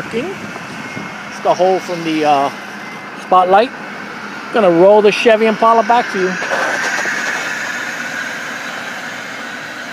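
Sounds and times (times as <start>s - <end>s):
car running with high whine: 0.0s - 9.9s.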